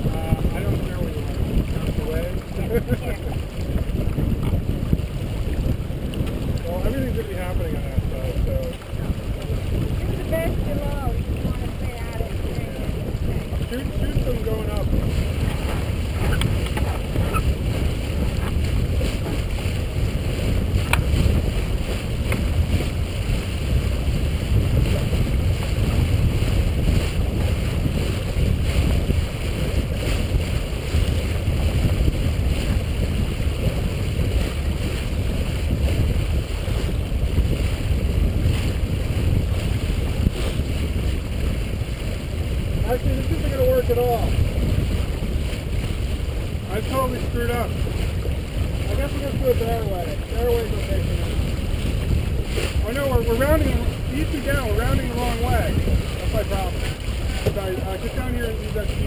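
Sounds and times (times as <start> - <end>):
water rushing past hull: 0.0 - 59.0
wind buffeting microphone: 0.0 - 59.0.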